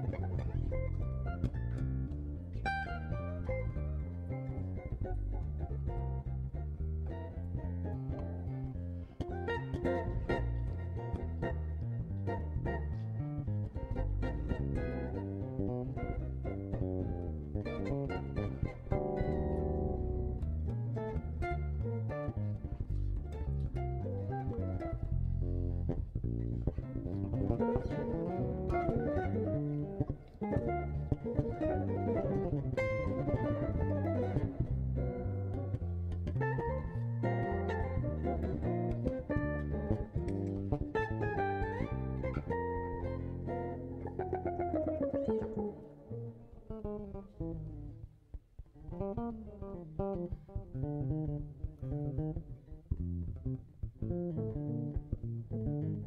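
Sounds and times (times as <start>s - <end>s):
plucked jazz guitar: 0.0s - 56.0s
walking bass: 0.0s - 56.0s.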